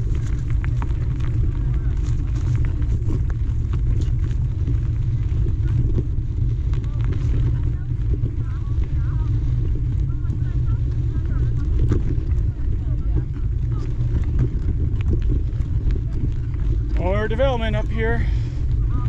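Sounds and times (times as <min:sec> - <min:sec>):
bike rolling on dirt: 0:00.0 - 0:19.0
wind rumble on microphone: 0:00.0 - 0:19.0.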